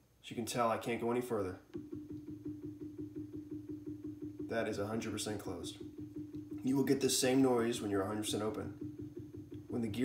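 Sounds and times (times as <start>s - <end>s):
stepper motor pulsing hum: 1.8s - 10.0s.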